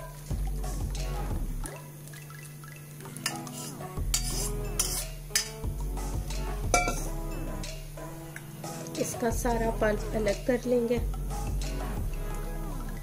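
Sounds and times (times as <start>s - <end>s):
background music: 0.0s - 13.0s
spoon scraping in mesh strainer: 3.3s - 5.5s.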